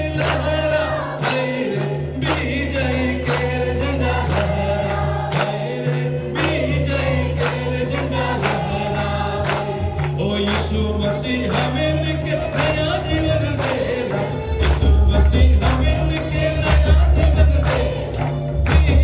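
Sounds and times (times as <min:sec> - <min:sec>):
congregation singing: 0:00.0 - 0:19.0
man singing into microphone: 0:00.0 - 0:19.0
hand drum beating: 0:14.6 - 0:19.0.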